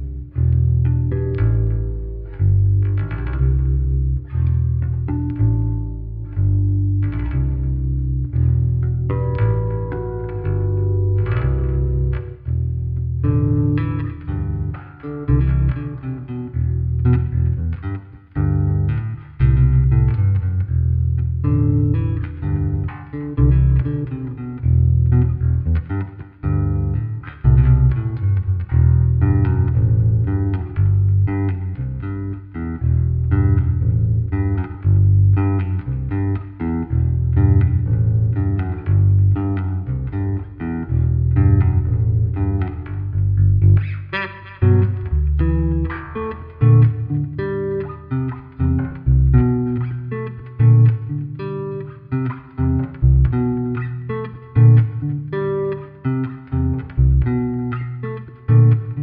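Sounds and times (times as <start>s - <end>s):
electric bass guitar plucked notes: 0.0s - 59.0s.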